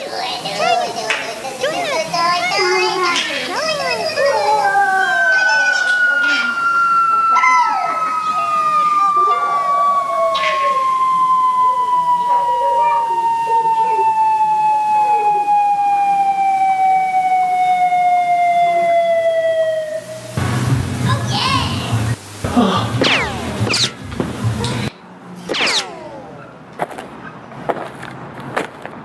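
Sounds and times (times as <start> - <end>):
people shouting and cheering: 0.4 - 24.9
falling whistle sound effect: 4.4 - 20.4, 23.0 - 24.0, 25.5 - 26.3.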